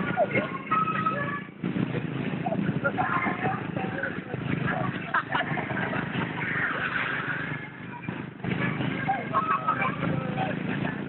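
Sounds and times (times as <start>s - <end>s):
motorcycle engines: 0.0s - 11.0s
people talking: 0.0s - 11.0s
street traffic: 0.0s - 11.0s.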